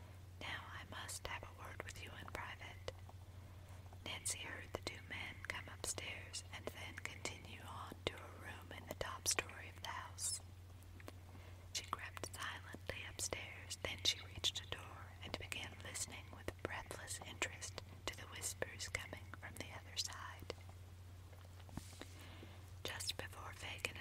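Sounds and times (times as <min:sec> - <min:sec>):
person whispering: 0:00.4 - 0:02.9, 0:11.8 - 0:20.5, 0:22.9 - 0:24.0.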